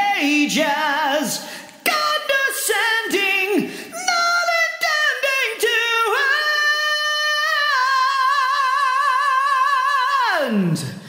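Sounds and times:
man singing high with reverb: 0.0 - 11.0.

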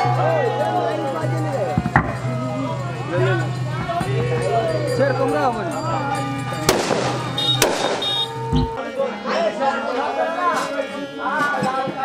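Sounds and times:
firecracker bangs: 6.6 - 8.8.

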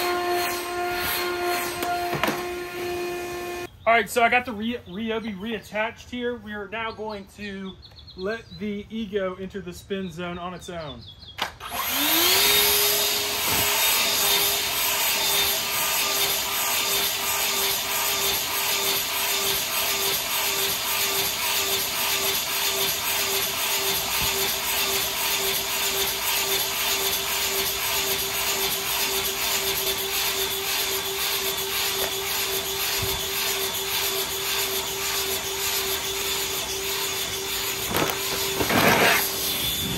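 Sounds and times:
leaf blower whining: 0.0 - 3.7, 11.5 - 39.9.

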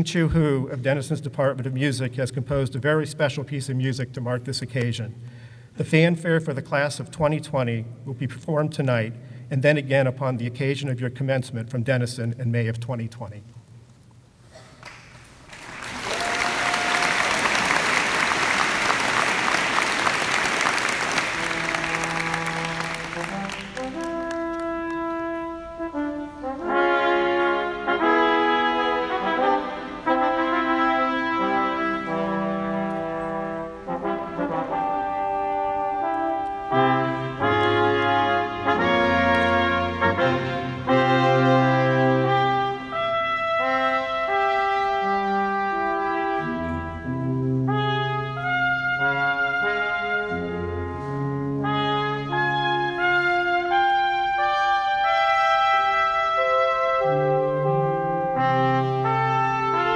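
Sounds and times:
brass quartet playing fanfare: 15.9 - 59.9.

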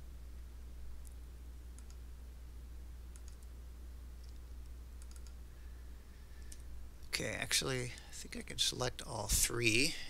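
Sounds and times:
low electrical hum: 0.0 - 10.0
computer mouse clicking: 1.0 - 2.0, 3.1 - 3.5, 4.2 - 5.4.

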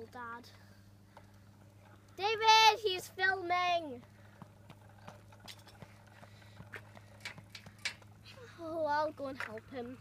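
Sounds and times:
steady low hum: 0.0 - 10.0
faint footsteps on tarmac: 0.4 - 10.0.

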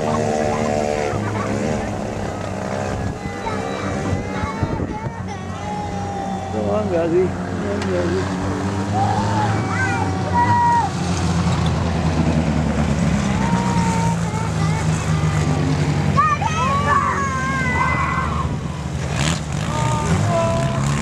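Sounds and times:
race car engines droning: 0.0 - 21.0.

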